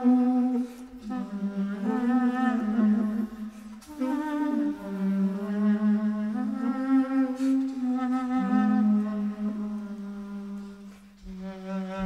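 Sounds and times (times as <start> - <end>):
slow clarinet ensemble music: 0.0 - 12.0.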